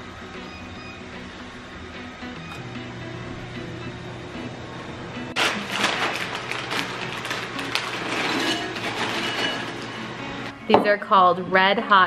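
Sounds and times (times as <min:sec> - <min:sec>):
background music: 0:00.0 - 0:12.0
plastic snack bag crinkling: 0:05.4 - 0:09.9.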